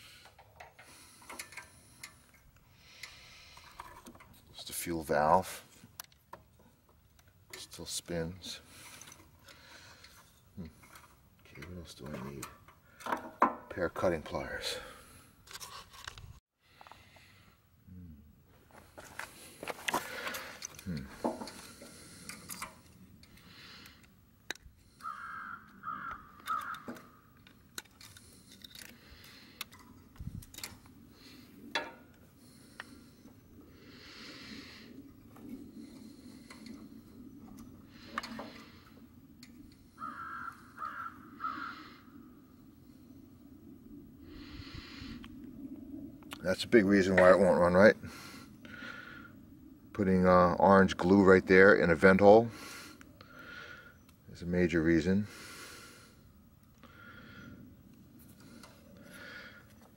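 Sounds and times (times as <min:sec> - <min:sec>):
small metal clicks and rattles: 0:00.2 - 0:04.4, 0:19.8 - 0:24.7, 0:26.4 - 0:30.9
crow cawing: 0:24.9 - 0:27.3, 0:39.9 - 0:42.1.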